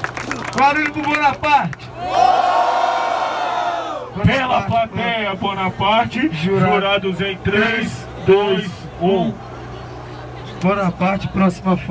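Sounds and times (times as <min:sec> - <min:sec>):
crowd shouting and cheering: 0:01.9 - 0:04.7.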